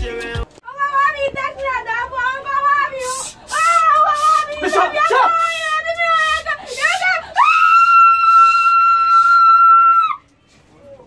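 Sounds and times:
long steady scream: 0:03.0 - 0:10.3.

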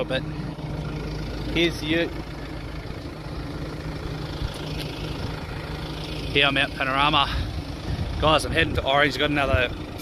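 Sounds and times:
vehicle engine idling: 0:00.0 - 0:10.0.

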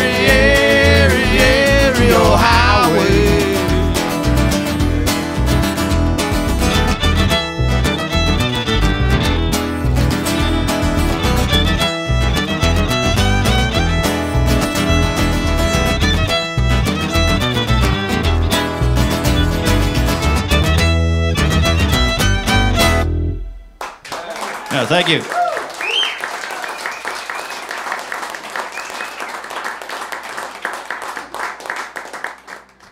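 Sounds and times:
steady beat: 0:00.0 - 0:18.5
strummed acoustic guitar: 0:00.0 - 0:23.5
fiddle playing lead: 0:00.0 - 0:23.8.

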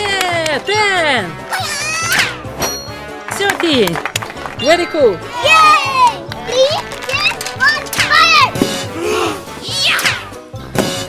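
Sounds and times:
background music with beat: 0:00.0 - 0:11.0
children shouting and squealing: 0:01.5 - 0:02.4, 0:05.3 - 0:06.2.

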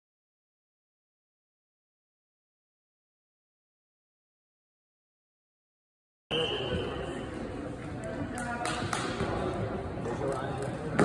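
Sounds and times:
spectators chattering in hall: 0:06.3 - 0:11.0.

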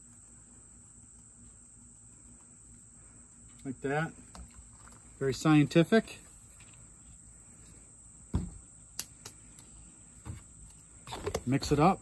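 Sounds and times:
crickets chirring: 0:00.0 - 0:12.0
dull knock of plastic tub: 0:08.3 - 0:08.6.

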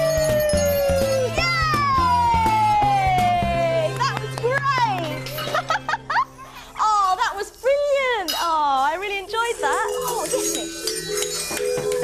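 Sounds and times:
light music of held notes: 0:00.0 - 0:12.0.

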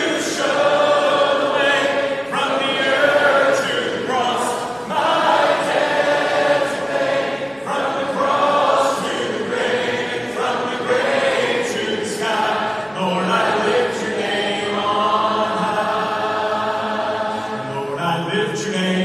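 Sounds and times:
crowd singing unaccompanied: 0:00.0 - 0:19.0.

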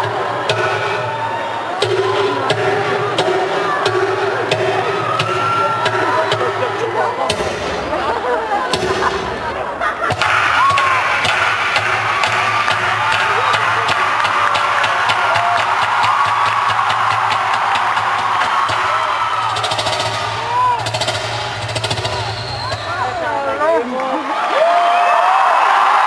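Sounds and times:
loud amplified music: 0:00.0 - 0:23.8
audience screaming and cheering: 0:00.0 - 0:26.0.

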